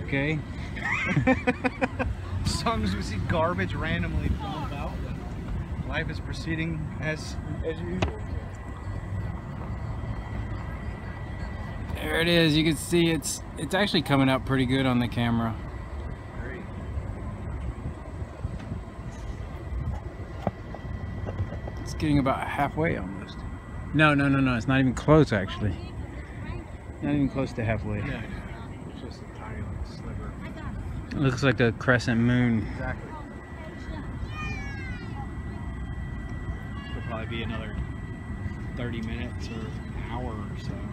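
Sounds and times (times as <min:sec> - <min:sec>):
low outdoor background rumble: 0:00.0 - 0:40.9.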